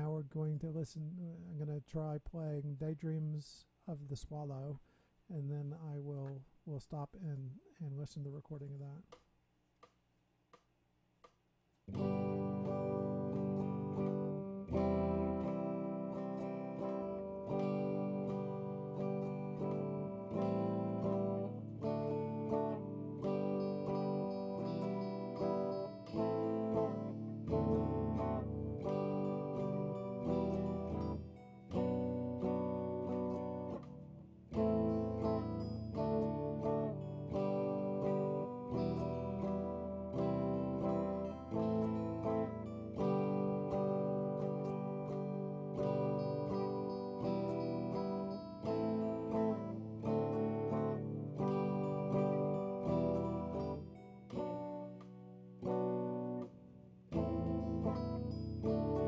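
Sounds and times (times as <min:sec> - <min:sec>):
electric guitar strumming chords: 0:11.8 - 0:59.0.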